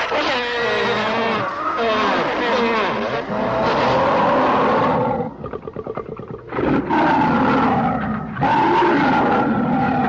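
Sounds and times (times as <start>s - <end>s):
monster rattling growl: 4.8s - 8.4s.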